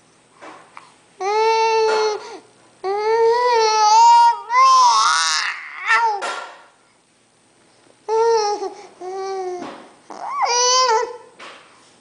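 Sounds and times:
baby crying: 1.2 - 6.2, 8.1 - 11.3.

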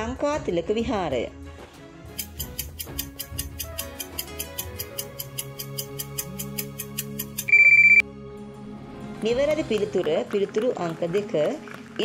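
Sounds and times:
background music: 0.0 - 12.0
countdown timer ticking: 2.1 - 8.0
loud electronic beep: 7.5 - 8.0.

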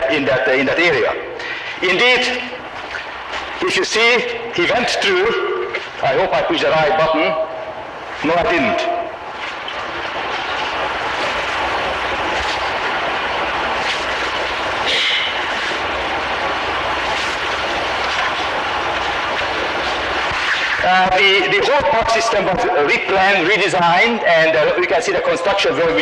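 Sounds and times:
cassette hiss: 0.0 - 26.0
faint steady whine: 0.0 - 26.0.

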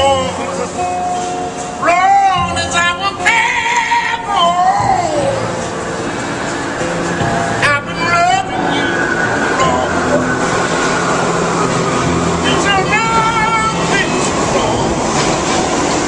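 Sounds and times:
person singing: 0.0 - 1.1, 1.8 - 5.6, 7.6 - 10.4, 12.4 - 15.3
low musical accompaniment: 0.0 - 16.0
street and traffic noise: 0.0 - 16.0.

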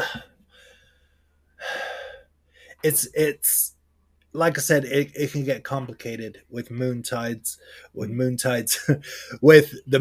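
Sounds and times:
man breathing in: 0.0 - 2.8, 7.6 - 7.9
man saying uh: 2.8 - 3.7.

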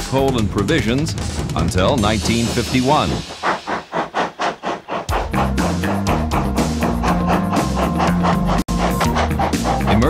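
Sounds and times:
steam locomotive chuffing: 0.4 - 10.0.

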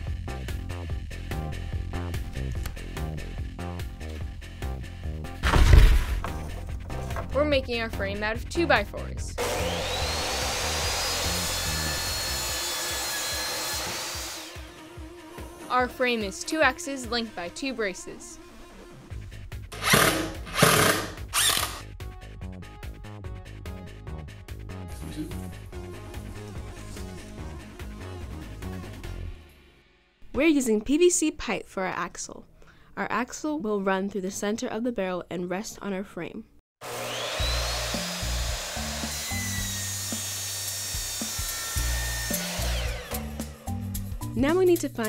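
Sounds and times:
background music: 0.0 - 31.1, 37.0 - 45.0
cordless drill bursts: 9.4 - 14.8, 19.8 - 21.9, 36.8 - 43.6
electric miter saw cutting pipe: 9.4 - 16.3, 19.7 - 21.9, 36.8 - 44.0.

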